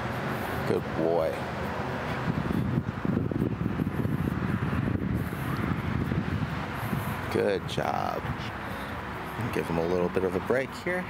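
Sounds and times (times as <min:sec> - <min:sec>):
wind buffeting microphone: 0:00.8 - 0:09.9.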